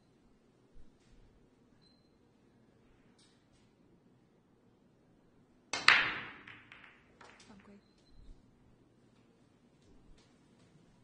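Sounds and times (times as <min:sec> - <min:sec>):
cue striking ball: 0:05.7 - 0:07.5
balls clattering: 0:05.7 - 0:07.8
billiard balls cracking: 0:05.7 - 0:07.8.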